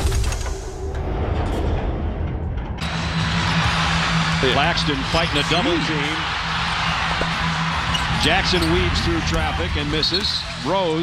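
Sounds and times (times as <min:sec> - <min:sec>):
arena crowd noise: 0:02.8 - 0:11.0.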